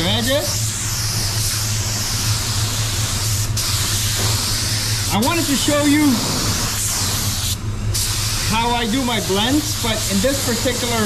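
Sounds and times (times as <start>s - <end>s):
low hum of air system: 0.0s - 11.0s
spray gun hissing: 0.0s - 11.0s.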